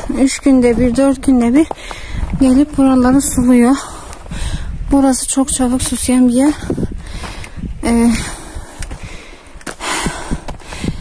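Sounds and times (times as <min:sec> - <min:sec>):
footsteps on stony path: 0:00.0 - 0:11.0
heavy breath: 0:01.7 - 0:02.3, 0:03.8 - 0:04.8, 0:06.6 - 0:11.0.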